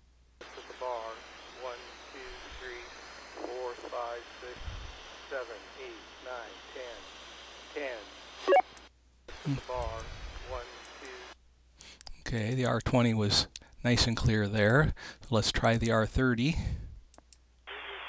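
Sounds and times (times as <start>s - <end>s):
man's voice over radio: 0.4s - 4.6s, 5.2s - 7.0s
radio hiss: 0.4s - 11.4s, 17.7s - 18.0s.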